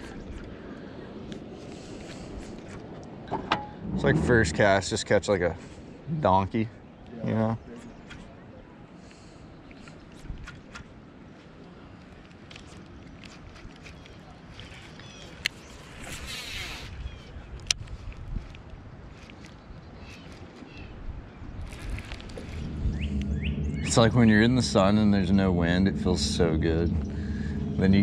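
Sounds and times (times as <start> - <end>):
water: 0.0 - 28.0
wind: 0.0 - 28.0
faint bird chirps: 19.4 - 25.0.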